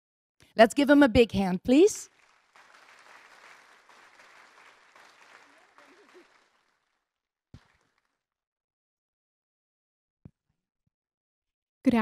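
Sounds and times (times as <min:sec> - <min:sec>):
faint audience applause: 0:02.0 - 0:08.2.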